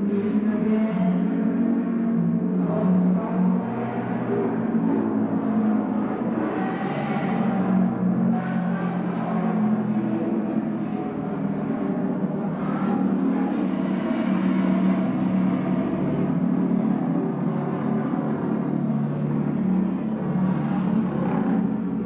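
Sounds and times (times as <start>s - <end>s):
low engine-like drone: 0.0s - 22.0s.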